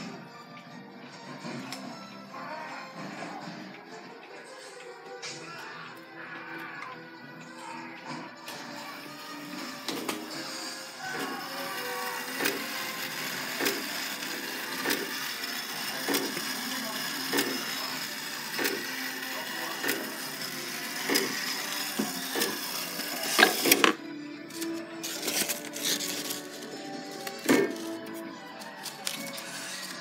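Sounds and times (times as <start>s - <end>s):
clocks chiming: 8.6s - 23.7s
clock striking the hour: 11.0s - 24.0s.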